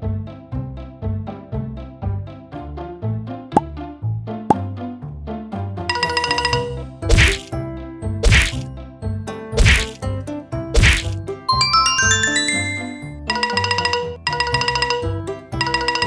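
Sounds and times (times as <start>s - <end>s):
bouncy children's music: 2.5s - 16.0s
sharp whack-like hits: 7.0s - 7.5s, 8.2s - 8.7s, 9.6s - 10.0s, 10.8s - 11.2s
rising run of chime notes: 11.5s - 13.3s.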